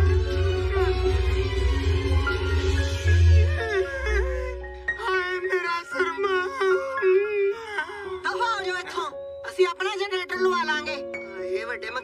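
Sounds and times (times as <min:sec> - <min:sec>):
background music with held notes: 0:00.0 - 0:12.0
person wailing and whimpering: 0:03.4 - 0:08.5.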